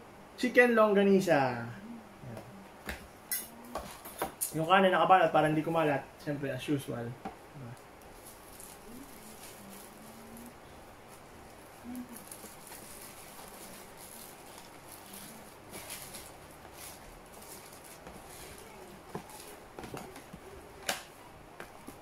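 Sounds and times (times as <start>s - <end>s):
paper wrapping crinkling: 8.0s - 21.1s.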